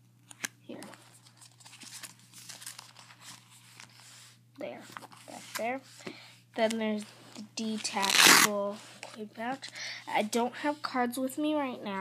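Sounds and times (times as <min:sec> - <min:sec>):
duct tape crinkling and rustling: 0:00.2 - 0:04.0, 0:07.8 - 0:09.8.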